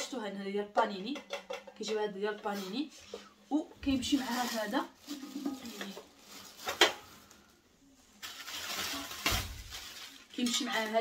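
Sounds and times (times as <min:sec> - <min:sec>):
plastic wrapping crinkling: 0:03.8 - 0:07.5, 0:08.1 - 0:11.0.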